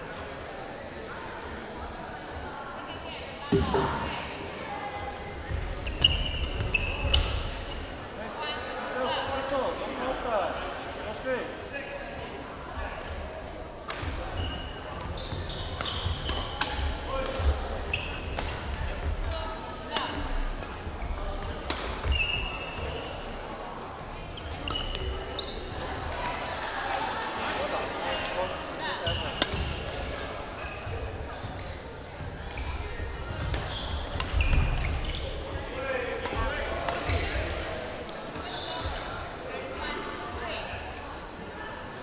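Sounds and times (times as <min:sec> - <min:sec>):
murmur of voices: 0:00.0 - 0:42.0
racket hitting shuttlecock: 0:29.3 - 0:30.1, 0:36.2 - 0:37.1.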